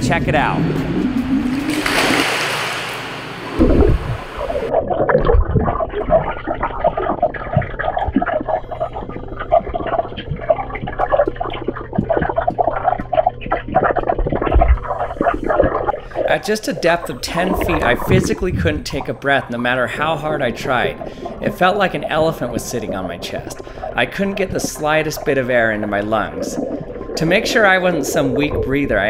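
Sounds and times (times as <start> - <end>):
steady low hum: 0.0 - 29.0
water splashing: 0.0 - 29.0
underwater bubbling and crackling: 3.0 - 29.0.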